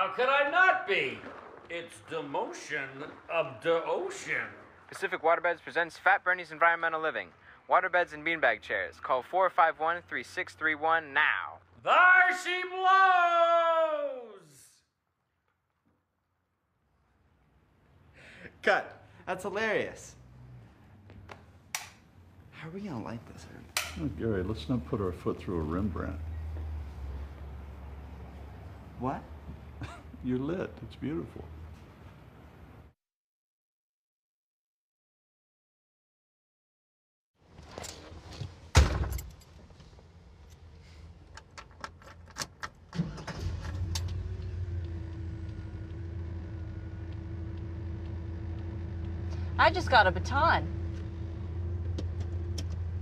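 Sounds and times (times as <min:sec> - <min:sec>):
sharp click: 0:21.3 - 0:22.0
car engine starting and idling: 0:40.4 - 0:53.0
low hum: 0:44.0 - 0:53.0.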